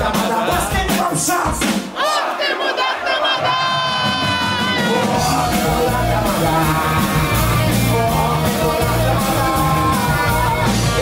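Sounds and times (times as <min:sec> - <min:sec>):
band bass and drums: 0:00.0 - 0:02.0, 0:03.4 - 0:11.0
audience shouting together: 0:01.9 - 0:07.6.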